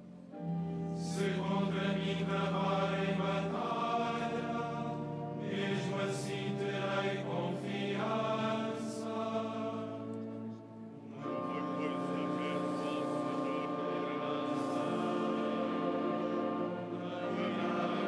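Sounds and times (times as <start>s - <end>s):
low sustained notes: 0.0s - 18.0s
male choir chanting: 0.9s - 18.0s.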